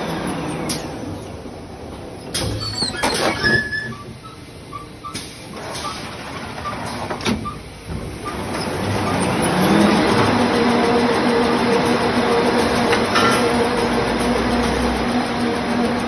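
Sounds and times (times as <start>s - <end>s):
paper rewinder machine running: 8.3s - 16.0s.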